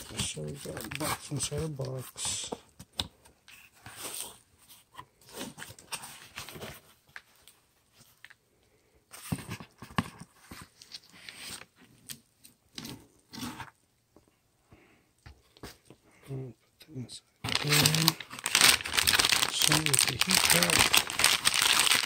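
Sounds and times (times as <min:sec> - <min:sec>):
cardboard and plastic rustling: 0:00.0 - 0:08.4, 0:09.1 - 0:12.0, 0:17.4 - 0:22.0.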